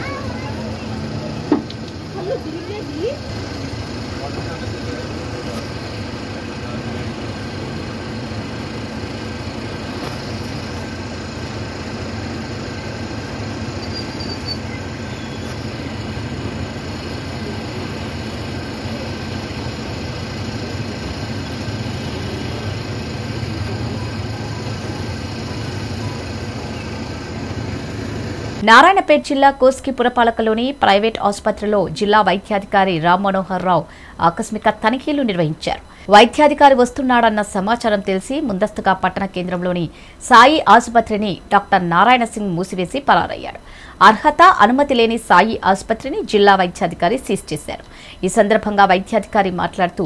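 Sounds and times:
faint passenger voices: 0.0s - 7.4s, 17.2s - 26.9s
bus engine and road noise: 0.0s - 28.6s.

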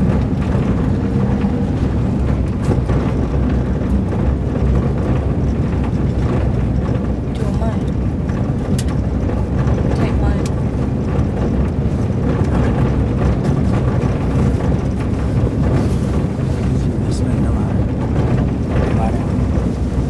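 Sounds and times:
light clicks and rattles: 0.0s - 20.0s
minibus engine and road noise: 0.0s - 20.0s.

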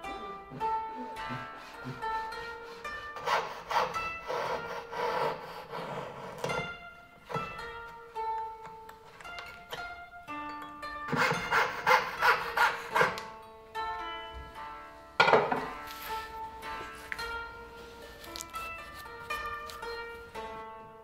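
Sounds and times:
plucked string music: 0.0s - 21.0s
hand saw cutting wood: 0.4s - 7.5s, 11.1s - 13.4s.

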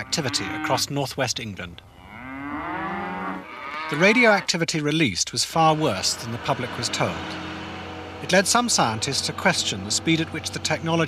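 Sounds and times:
cow mooing: 0.0s - 0.8s, 1.9s - 4.5s, 5.6s - 11.0s.

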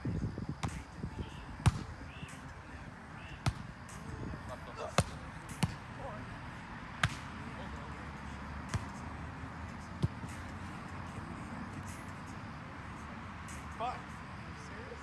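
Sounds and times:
hands slapping volleyball: 5.0s - 5.8s, 7.0s - 7.4s.

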